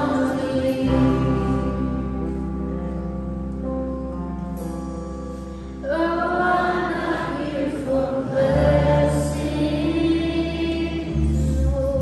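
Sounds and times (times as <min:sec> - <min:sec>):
voices singing together: 0:00.0 - 0:01.8, 0:05.8 - 0:12.0
worship band playing: 0:00.0 - 0:12.0.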